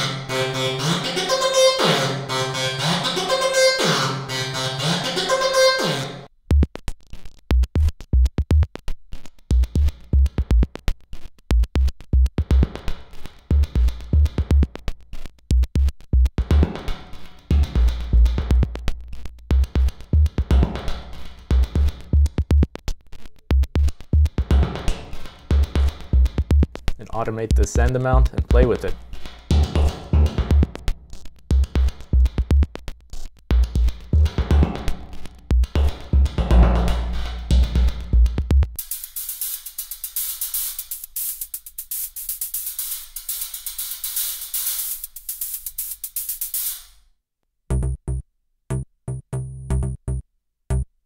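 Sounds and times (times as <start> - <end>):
drum machine beat: 6.4 - 47.0, 47.7 - 50.9.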